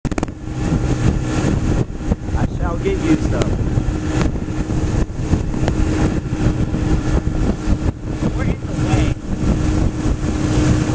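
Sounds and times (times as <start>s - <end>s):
outboard motor running: 0.0s - 10.9s
wind and water rushing: 0.0s - 10.9s.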